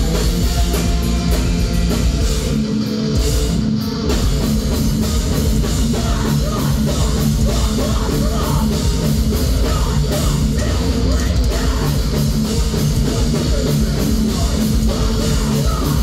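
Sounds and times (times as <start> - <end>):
bass guitar: 0.0 - 16.0
distorted electric guitars: 0.0 - 16.0
drum kit: 0.0 - 16.0.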